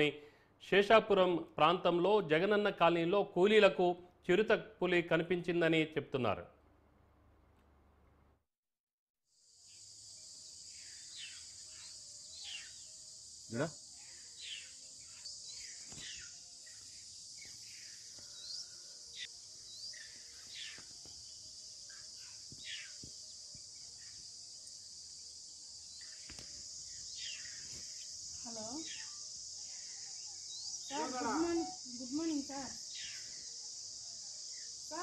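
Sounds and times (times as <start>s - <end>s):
high insect drone: 9.3s - 35.0s
falling bird chirps: 10.6s - 12.9s, 13.9s - 24.3s, 25.9s - 33.6s.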